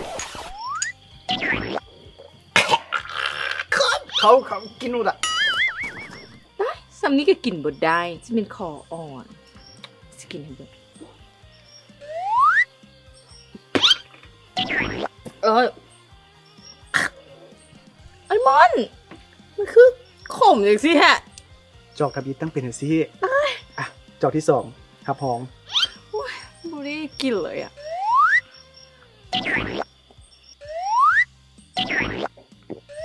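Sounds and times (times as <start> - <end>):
faint background music: 0.0 - 33.0
woman choking cough: 2.6 - 4.0
rising slide whistle: 5.4 - 6.4, 12.0 - 12.7, 27.8 - 28.5, 30.6 - 31.3.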